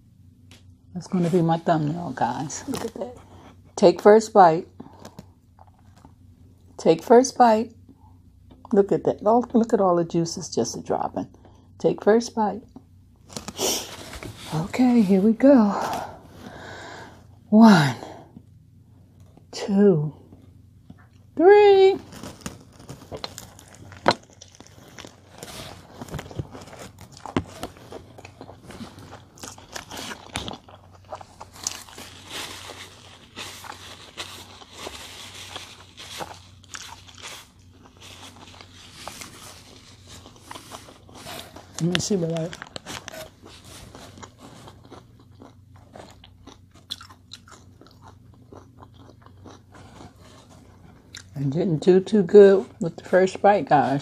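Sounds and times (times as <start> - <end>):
paper napkin rustling: 13.2 - 16.4, 22.0 - 44.8
wet chewing crunches: 22.0 - 51.4.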